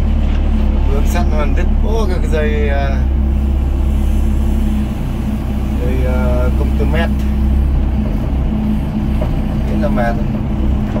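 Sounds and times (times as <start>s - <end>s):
excavator diesel engine rumbling: 0.0s - 11.0s.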